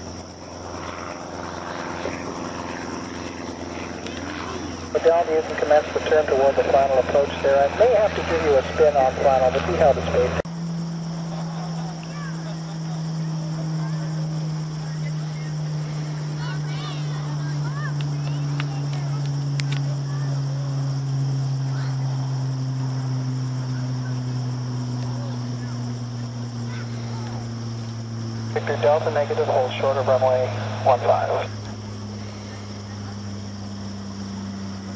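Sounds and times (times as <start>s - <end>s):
crickets chirping: 0.0s - 34.9s.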